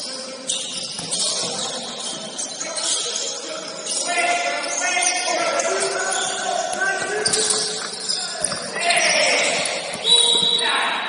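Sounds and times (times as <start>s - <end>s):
shoe squeaks: 0.0s - 10.8s
players calling out: 0.2s - 11.0s
basketball bouncing on wooden court: 0.6s - 2.2s, 7.0s - 10.6s.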